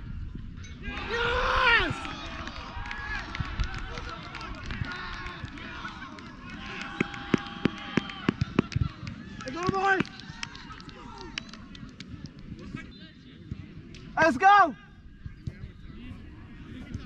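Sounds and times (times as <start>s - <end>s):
players shouting: 0.8s - 11.4s.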